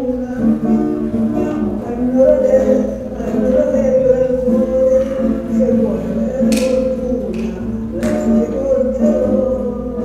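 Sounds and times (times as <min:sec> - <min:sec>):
classical guitar melody: 0:00.0 - 0:10.0.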